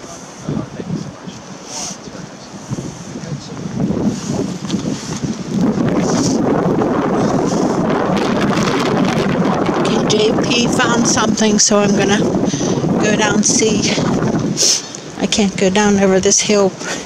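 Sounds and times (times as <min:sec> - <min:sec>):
wind blowing on microphone: 0:00.0 - 0:17.0.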